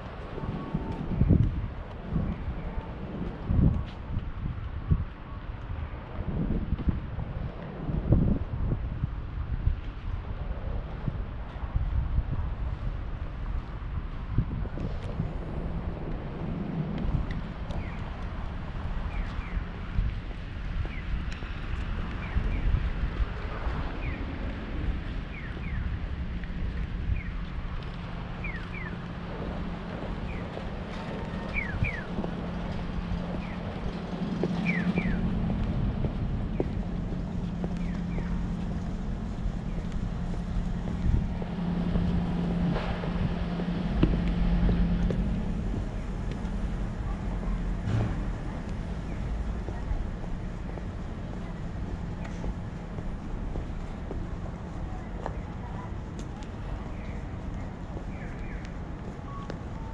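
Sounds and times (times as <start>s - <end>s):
traffic rumble and hum: 0.0s - 59.9s
wind buffeting microphone: 0.0s - 59.9s.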